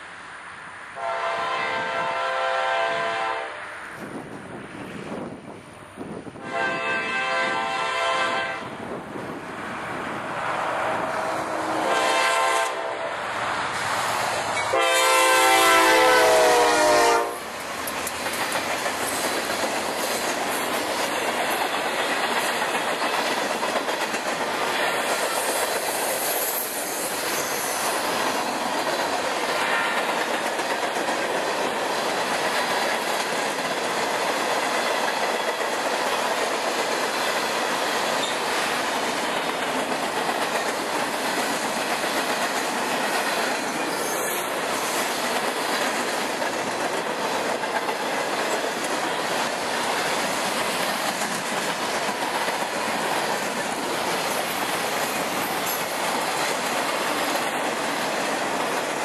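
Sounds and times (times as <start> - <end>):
train horn blast: 1.0 - 4.0, 6.4 - 8.8, 10.7 - 13.3, 14.6 - 17.5, 29.6 - 30.1
train wheels clacking on rails: 13.8 - 59.0.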